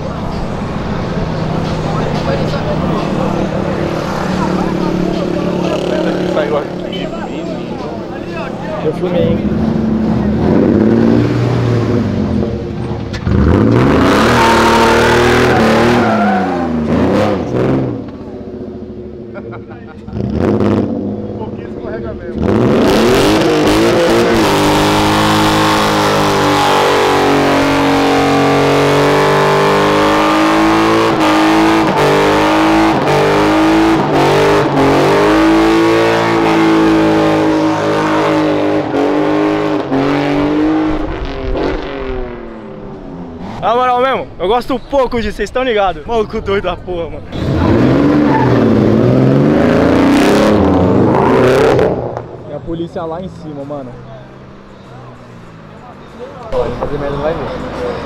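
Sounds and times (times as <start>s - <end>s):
car engine revving: 0.0s - 44.6s, 46.9s - 55.9s
tyres screeching: 12.7s - 17.9s, 43.4s - 52.0s.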